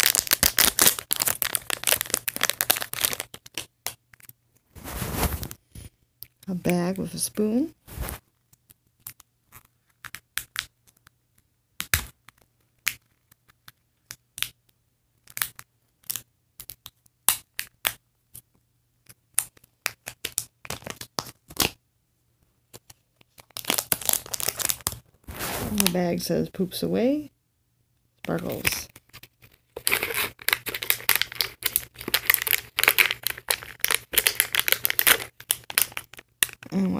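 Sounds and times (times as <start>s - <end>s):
plastic foil packet crinkling: 0.0s - 3.7s, 22.8s - 26.0s, 28.3s - 36.9s.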